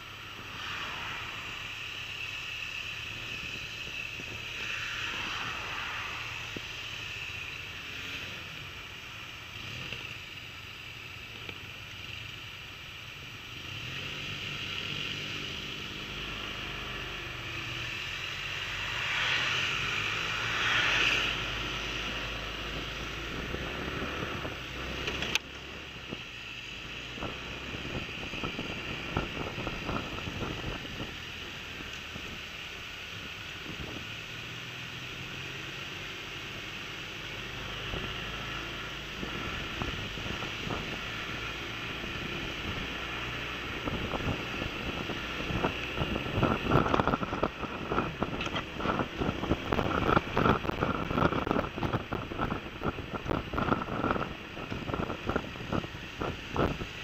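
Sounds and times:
scooter engine and tyre noise: 0:00.0 - 0:57.0
wind on microphone: 0:27.1 - 0:31.2, 0:43.7 - 0:57.0.

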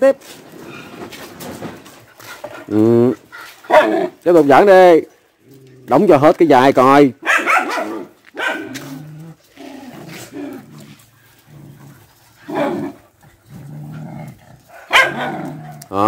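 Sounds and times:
dogs growling: 0:01.9 - 0:04.2, 0:05.4 - 0:06.1, 0:07.8 - 0:16.0
dogs barking: 0:03.4 - 0:04.2, 0:07.2 - 0:08.9, 0:14.6 - 0:15.9.

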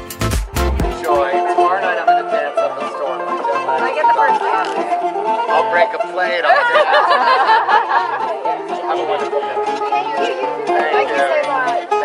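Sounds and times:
stepping bass line: 0:00.0 - 0:01.4
acoustic guitar: 0:00.0 - 0:12.0
bright plucked lead: 0:00.0 - 0:12.0.

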